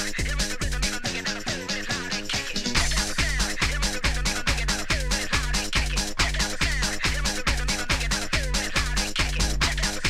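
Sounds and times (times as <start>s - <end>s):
electronic dance music: 0.0s - 10.0s
synth bass line: 0.0s - 10.0s
kick drum: 2.8s - 10.0s.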